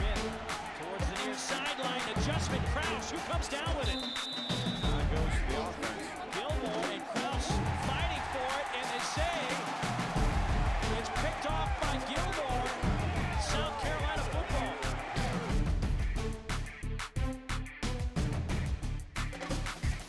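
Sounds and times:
voices: 0.0 - 9.8, 10.8 - 15.4
music with steady beat: 0.0 - 20.0.

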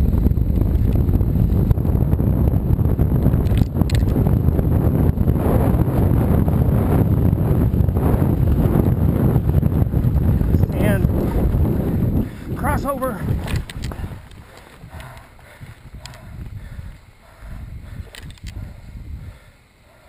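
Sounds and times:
low rumble of bike ride: 0.0 - 20.0
wind buffeting microphone: 0.0 - 20.0.

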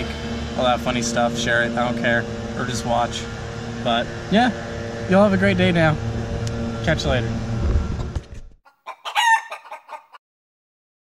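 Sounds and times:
high animal-like calls: 8.7 - 10.2.

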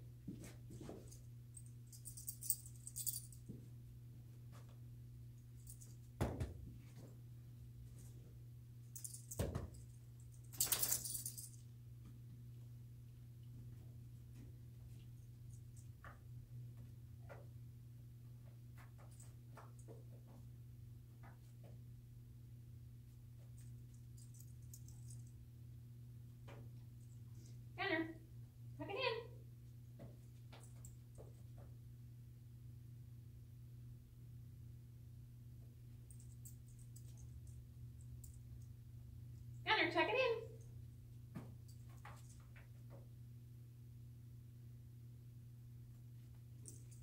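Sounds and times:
low room hum: 0.0 - 47.0
dog collar tags jingling: 1.6 - 3.5, 9.0 - 11.6.

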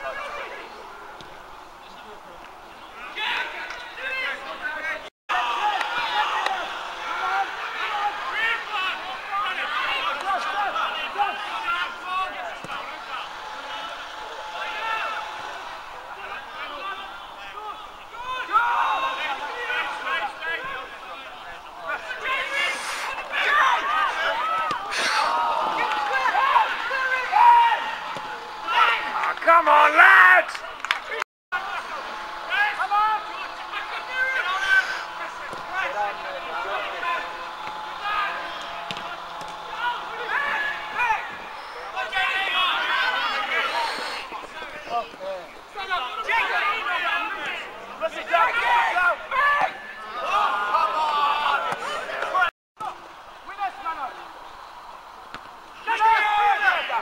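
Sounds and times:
men shouting and calling: 0.0 - 57.0.

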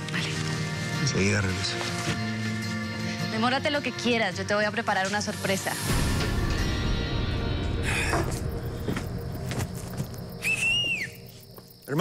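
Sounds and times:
background music: 0.0 - 12.0
person whistling: 10.4 - 11.3.

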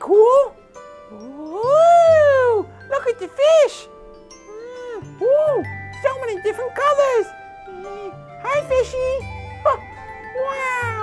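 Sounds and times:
soft background music: 0.0 - 11.0
person saying ooh in wonder: 1.1 - 2.7, 4.5 - 5.7, 10.4 - 11.0.

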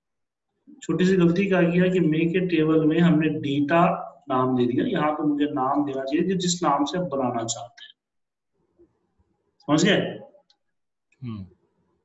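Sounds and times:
man speaking: 0.8 - 8.0, 11.2 - 11.5.

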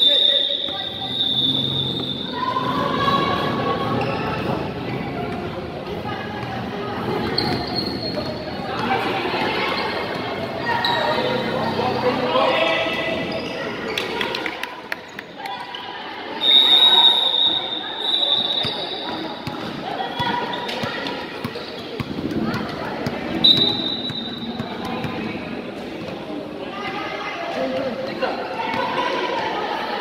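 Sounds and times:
whistle blast: 0.0 - 2.4, 16.4 - 19.2, 23.4 - 24.5
voices of players and spectators: 0.0 - 30.0.

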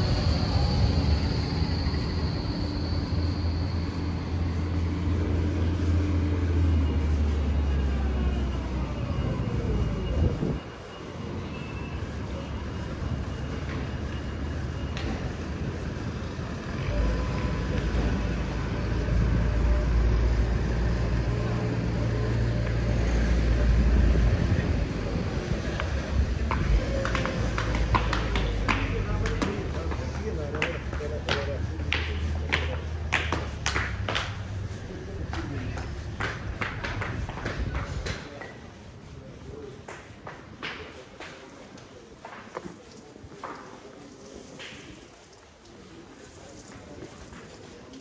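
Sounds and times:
vehicles passing with engine rumble: 0.0 - 43.3.

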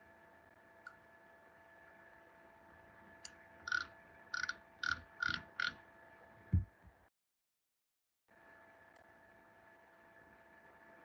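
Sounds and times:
faint steady hum: 0.0 - 7.1, 8.3 - 11.0
low thump: 6.5 - 6.8.

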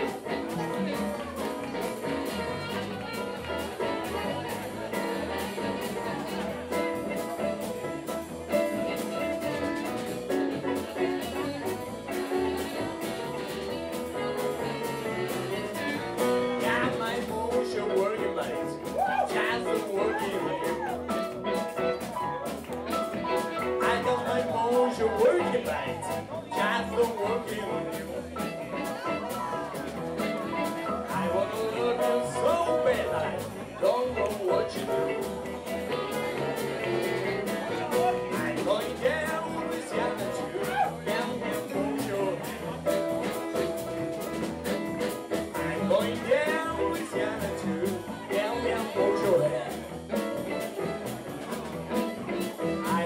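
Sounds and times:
blues band playing: 0.0 - 53.0.

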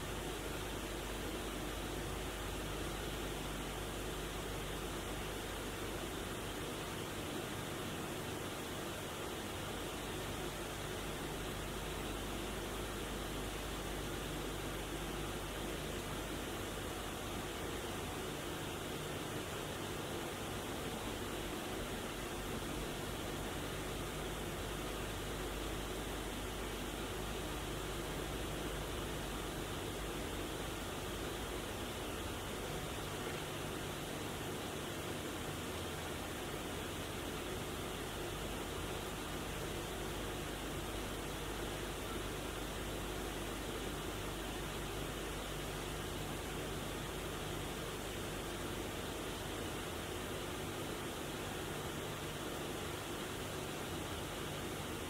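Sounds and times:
faint low hum: 0.0 - 55.0
steady hiss: 0.0 - 55.0.

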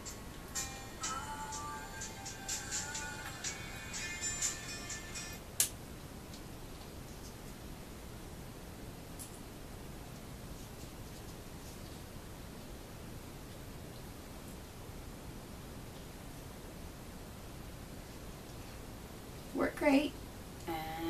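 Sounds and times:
thin music with ticking beat: 0.0 - 5.4.

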